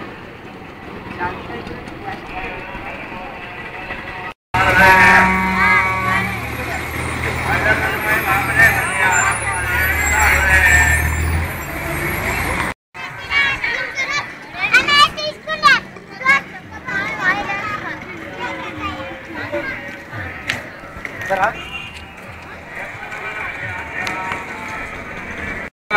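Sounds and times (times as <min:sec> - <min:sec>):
crowd talking: 0:00.2 - 0:25.7.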